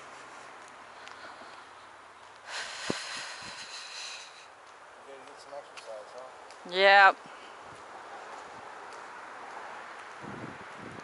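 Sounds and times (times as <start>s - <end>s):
person breathing out hard: 2.4s - 4.5s.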